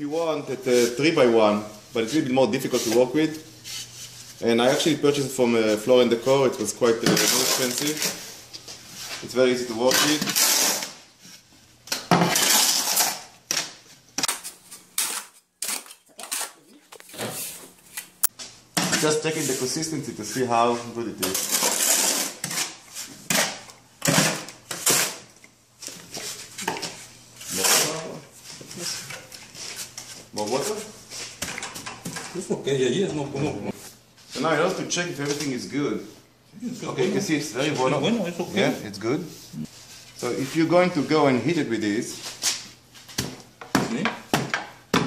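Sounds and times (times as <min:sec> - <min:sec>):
shovel scraping wet mortar: 0:07.1 - 0:08.2, 0:09.9 - 0:11.0, 0:12.3 - 0:13.3, 0:14.2 - 0:18.3, 0:21.2 - 0:25.3, 0:27.4 - 0:28.1
tool slapping on mortar: 0:11.9 - 0:17.3.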